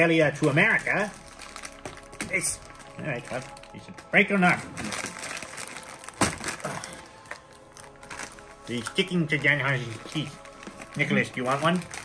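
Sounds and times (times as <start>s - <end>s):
plastic candy wrapper crinkling: 0.0s - 12.0s
sweets cracking apart: 0.0s - 12.0s.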